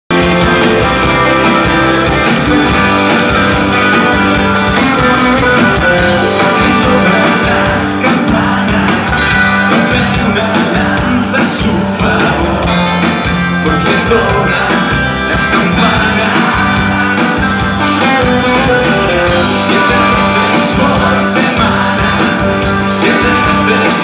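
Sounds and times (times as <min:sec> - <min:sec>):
electric guitars: 0:00.1 - 0:24.0
steady drum beat: 0:00.1 - 0:24.0.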